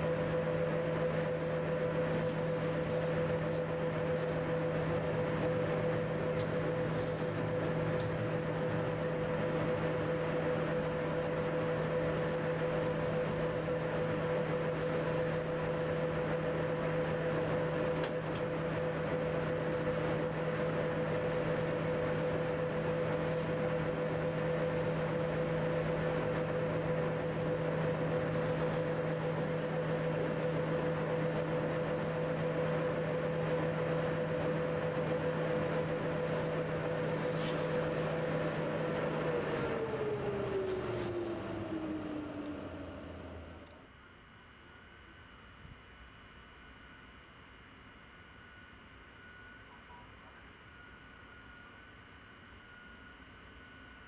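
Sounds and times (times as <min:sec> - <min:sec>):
electric locomotive whine and hum: 0:00.0 - 0:54.0.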